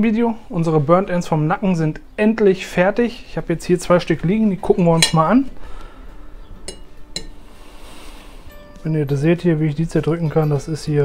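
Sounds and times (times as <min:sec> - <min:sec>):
faint background music: 0:00.0 - 0:11.0
fork clinking on china plate: 0:05.0 - 0:05.3, 0:06.7 - 0:07.4
man's voice: 0:08.8 - 0:11.0.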